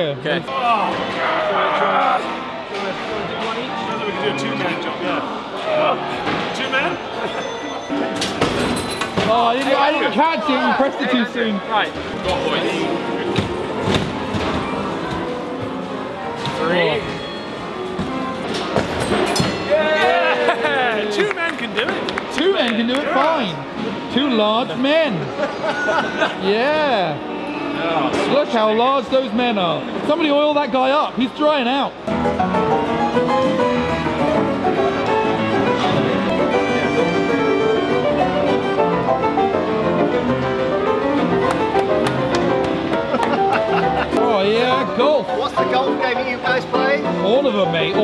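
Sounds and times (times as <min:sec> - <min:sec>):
music playing: 0:00.6 - 0:29.8, 0:32.0 - 0:48.0
player piano playing ragtime: 0:32.1 - 0:48.0.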